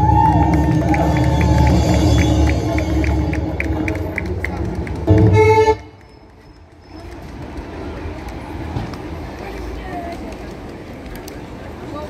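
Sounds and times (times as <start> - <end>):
indistinct voices: 0.0 - 12.0
low city rumble: 0.0 - 12.0.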